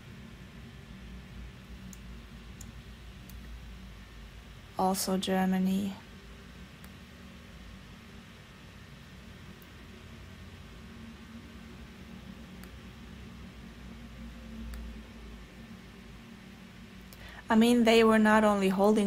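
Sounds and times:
steady hiss and low hum: 0:00.0 - 0:19.0.

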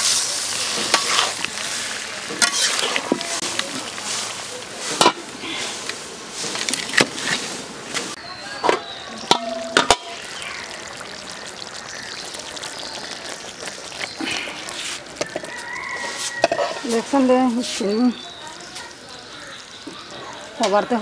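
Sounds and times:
curry simmering with hiss: 0:00.0 - 0:21.0
metal lid clanking onto pan: 0:08.6 - 0:10.2.

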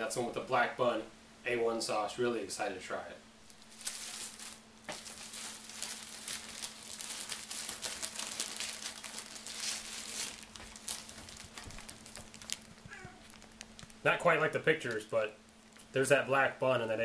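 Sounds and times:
paper wrapper crinkling: 0:03.4 - 0:15.9.

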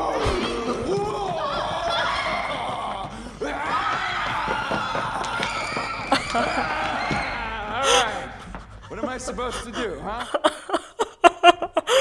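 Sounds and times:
people shouting and screaming: 0:00.0 - 0:08.7.

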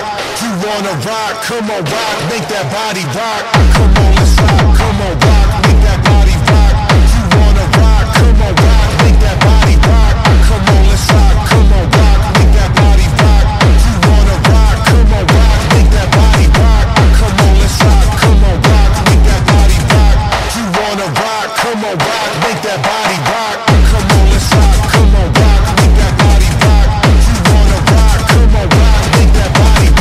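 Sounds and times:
techno music: 0:00.0 - 0:30.0
heavy kick drum: 0:03.4 - 0:30.0.

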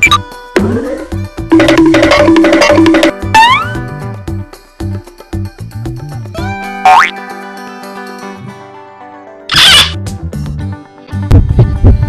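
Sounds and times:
upbeat background music: 0:00.0 - 0:08.8.

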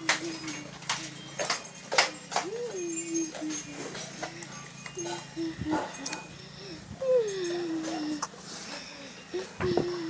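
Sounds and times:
dog whining: 0:02.0 - 0:10.0.

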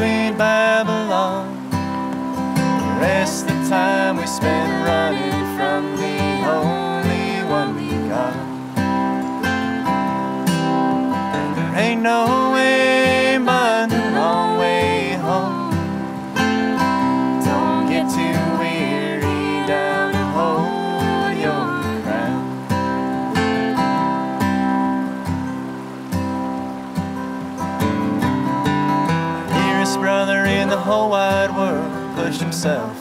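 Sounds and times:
man and woman singing: 0:00.0 - 0:01.9, 0:02.8 - 0:08.8, 0:11.7 - 0:22.7, 0:29.4 - 0:33.0
acoustic guitar strummed: 0:00.0 - 0:33.0.

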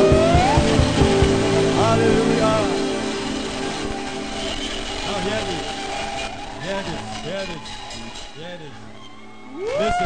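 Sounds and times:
fast drum beat: 0:00.0 - 0:02.0
held keyboard note: 0:00.0 - 0:05.7
gliding high notes: 0:00.0 - 0:09.5.

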